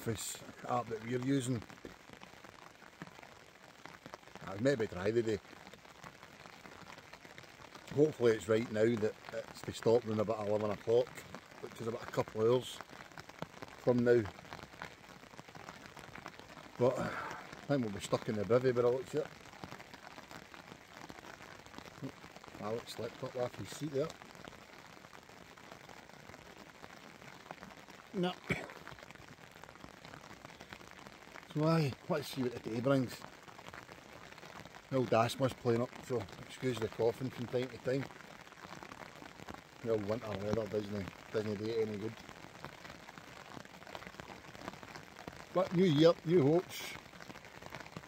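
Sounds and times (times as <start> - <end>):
man's voice: 0.0 - 1.6, 22.6 - 24.1, 28.2 - 28.8, 31.5 - 33.2, 34.9 - 38.0, 39.8 - 42.2, 45.6 - 47.0
rain patter on tent fabric: 0.0 - 48.0.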